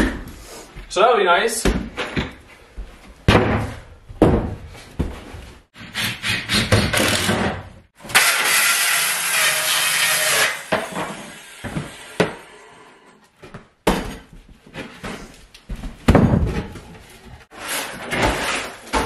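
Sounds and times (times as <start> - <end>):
circular saw cutting wood: 8.1 - 13.2.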